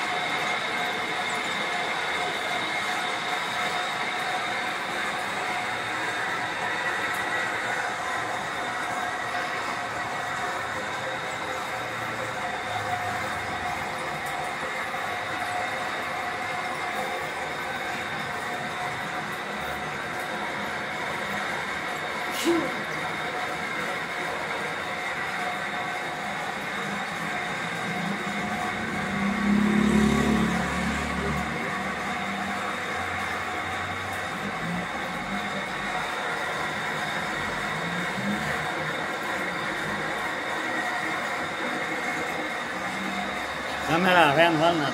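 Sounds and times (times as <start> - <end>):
metal lathe cutting: 0.0 - 44.9.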